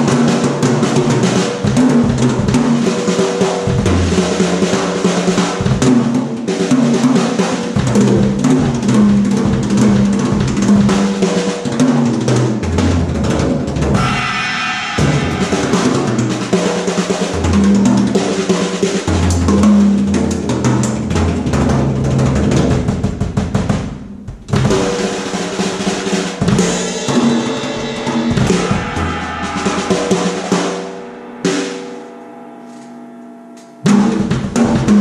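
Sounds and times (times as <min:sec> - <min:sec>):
drum kit solo: 0:00.0 - 0:35.0
ringing cymbal: 0:14.0 - 0:19.1, 0:26.1 - 0:35.0.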